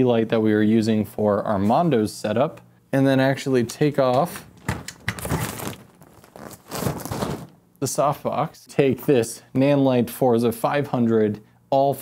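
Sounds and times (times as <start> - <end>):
fabric rustling: 4.3 - 7.7.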